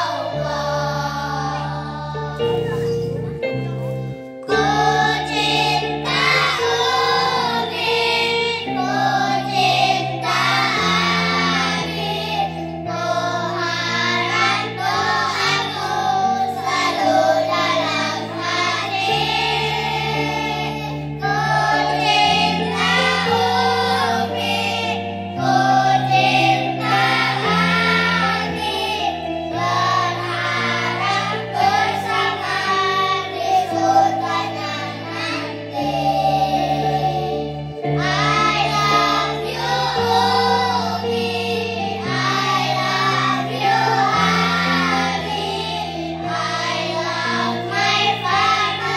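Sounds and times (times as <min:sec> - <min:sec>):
children singing in unison: 0:00.0 - 0:03.0, 0:04.4 - 0:48.9
instrumental backing: 0:00.0 - 0:48.9
musical accompaniment with low chords: 0:00.0 - 0:48.9.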